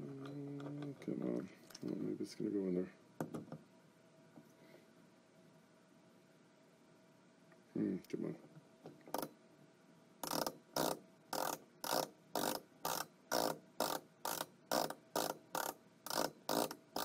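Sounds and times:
screwdriver clicking rasp: 0:10.2 - 0:17.0.

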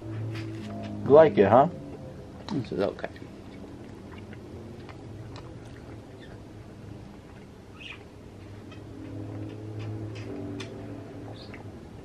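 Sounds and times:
steady low hum: 0:00.0 - 0:12.0
pet bird chirping: 0:05.7 - 0:06.5, 0:07.7 - 0:08.1, 0:11.3 - 0:11.7.

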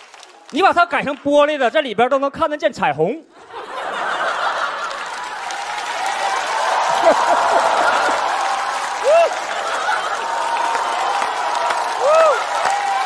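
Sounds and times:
audience laughing and applauding: 0:03.4 - 0:13.0.

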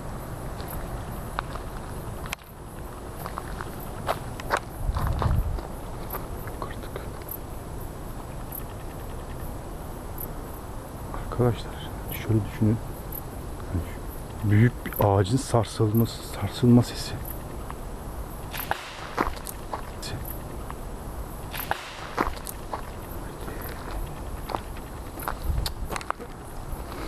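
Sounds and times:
night insects chirring: 0:00.0 - 0:27.0
footsteps through grass: 0:02.8 - 0:06.4.

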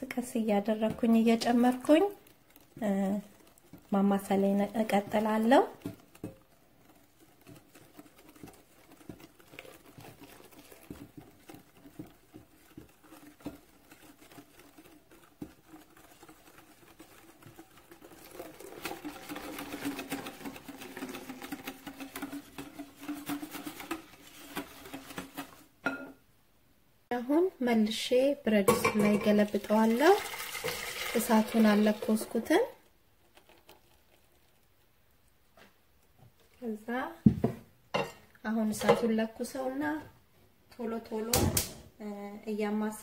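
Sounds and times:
whisk beating against glass bowl: 0:00.2 - 0:25.7, 0:28.7 - 0:32.6
milk pouring: 0:00.2 - 0:25.8, 0:29.0 - 0:36.6.

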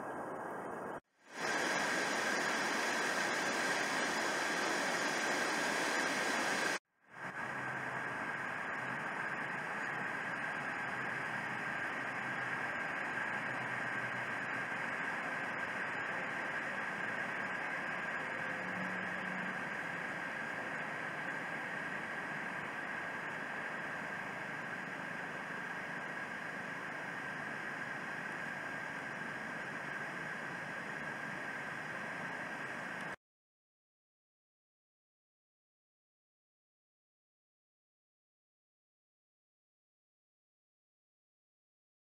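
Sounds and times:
river water rushing: 0:00.2 - 0:33.0.

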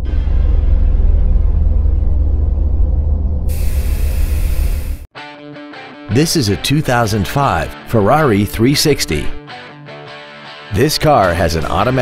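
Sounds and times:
deep rumble: 0:00.0 - 0:05.1
loud hiss: 0:03.5 - 0:05.1.

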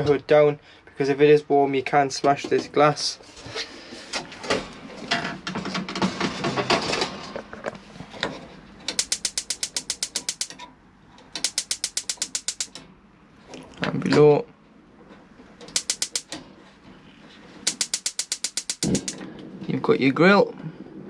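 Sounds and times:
rapid spark ignition clicking: 0:08.9 - 0:10.6, 0:11.4 - 0:12.8, 0:15.7 - 0:16.4, 0:17.7 - 0:19.2.

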